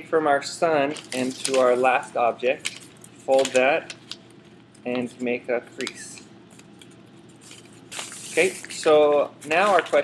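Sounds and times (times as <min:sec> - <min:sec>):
paper tape rustling: 0:00.8 - 0:10.0
paper crinkle: 0:00.9 - 0:10.0.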